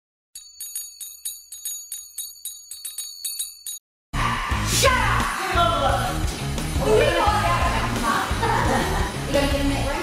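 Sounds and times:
bells ringing: 0.4 - 3.8.

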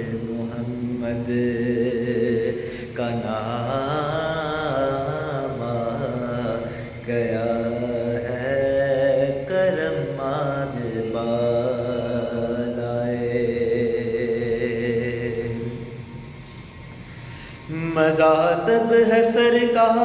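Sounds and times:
man chanting melismatic verse: 0.0 - 16.0, 17.7 - 20.0.

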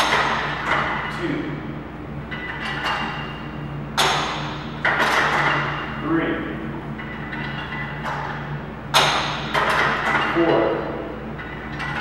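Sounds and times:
weight stack clanking: 0.0 - 1.6, 2.2 - 12.0.

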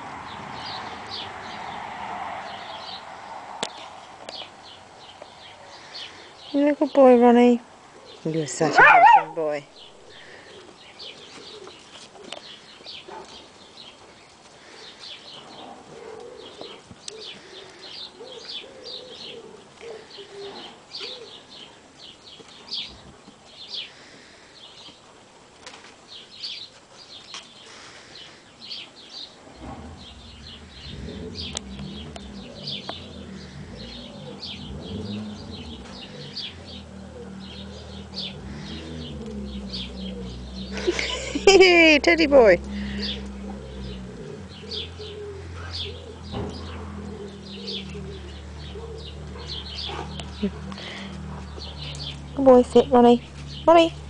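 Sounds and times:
birds chirping: 0.0 - 25.2, 26.0 - 54.0
low rumbling: 29.4 - 54.0.

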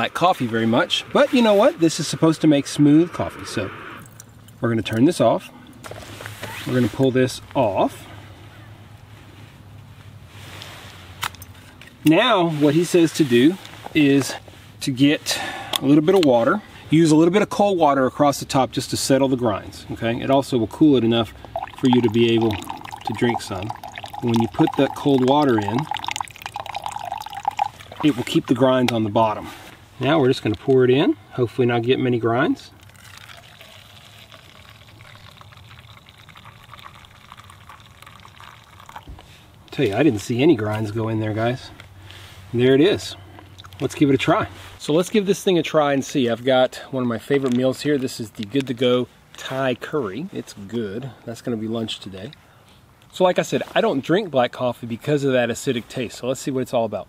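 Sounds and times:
low steady hum: 0.0 - 16.9, 18.2 - 45.4
liquid splashing and trickling: 21.0 - 29.3, 32.7 - 40.3
coffee pouring into a mug: 21.4 - 28.6, 32.8 - 39.2.

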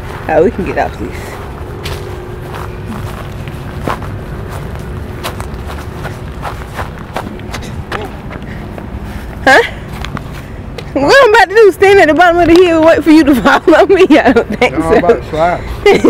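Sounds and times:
footsteps: 0.0 - 13.0
low wind rumble on microphone: 0.0 - 14.6.

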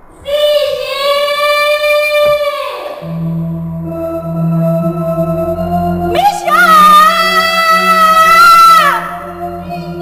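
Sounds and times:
long held musical note: 3.0 - 10.0.

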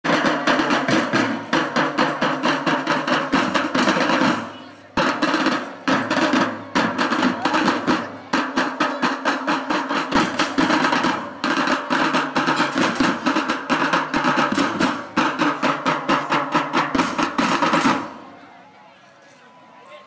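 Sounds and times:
marching drum band: 0.0 - 18.3.

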